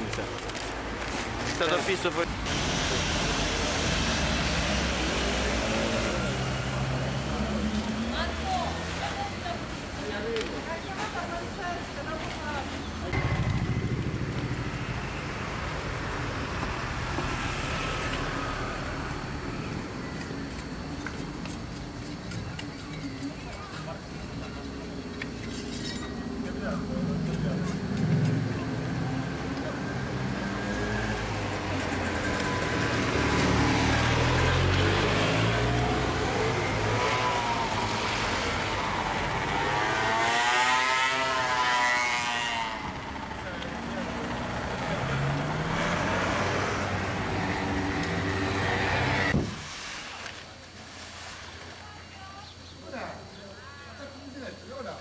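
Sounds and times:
motorbike passing: 0.0s - 21.0s, 24.0s - 50.1s
vehicle engines running: 0.0s - 49.8s.

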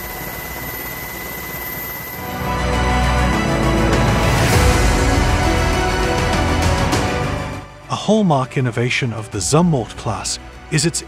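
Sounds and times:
high whine: 0.0s - 7.8s.

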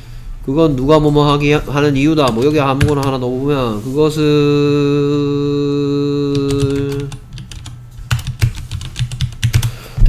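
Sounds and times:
computer keyboard typing: 2.1s - 3.2s, 6.3s - 9.8s.

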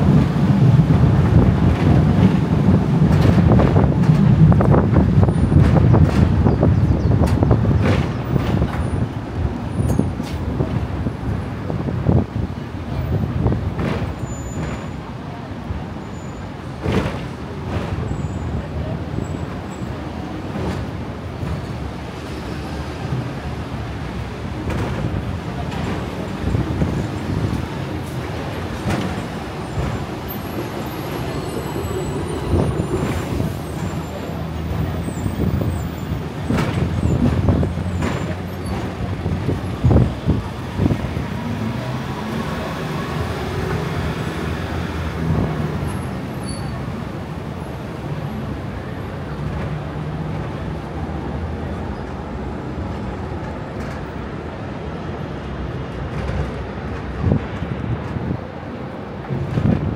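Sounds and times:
tram knocks: 0.0s - 15.8s, 16.6s - 59.9s
city traffic: 0.0s - 59.9s
tram rumbling on track: 0.0s - 59.9s.

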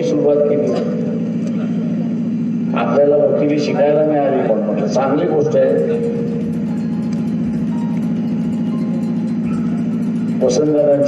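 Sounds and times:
low pulsing drone hum: 0.0s - 11.0s.

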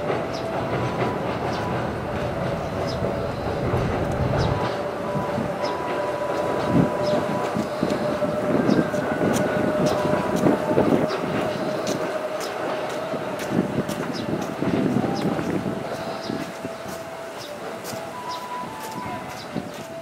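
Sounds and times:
train wheels rumbling: 0.0s - 20.0s
steady high tone: 0.5s - 13.4s, 14.6s - 20.0s.

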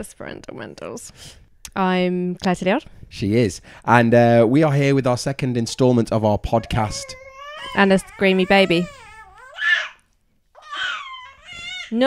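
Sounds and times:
baby screaming: 6.6s - 10.0s, 10.6s - 12.0s.

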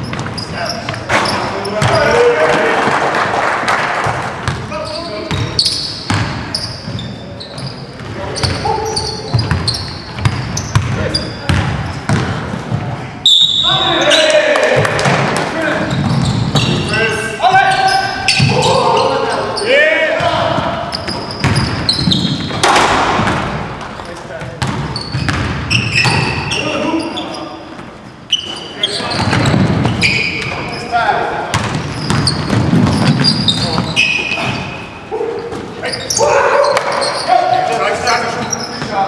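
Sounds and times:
sneaker squeaks: 0.0s - 2.3s, 4.4s - 14.5s, 15.6s - 22.7s, 23.8s - 39.0s
players calling out: 0.4s - 12.1s, 12.9s - 27.7s, 28.3s - 39.0s
basketball bouncing on hardwood: 9.3s - 12.9s, 24.6s - 26.2s, 31.5s - 33.4s.

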